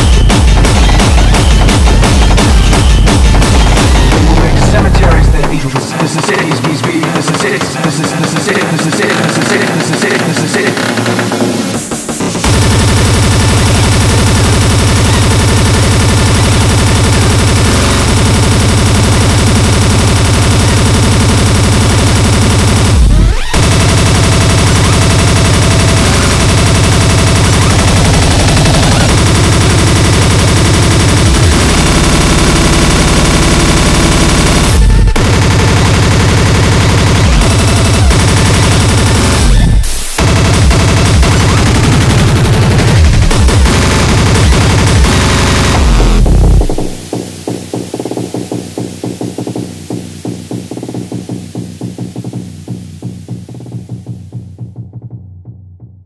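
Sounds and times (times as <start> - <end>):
speedcore electronic music: 0.0 - 56.0.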